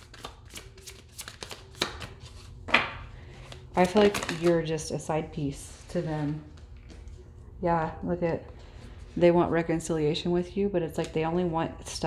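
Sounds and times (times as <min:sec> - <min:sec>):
cards shuffling clicks: 0:00.0 - 0:04.6.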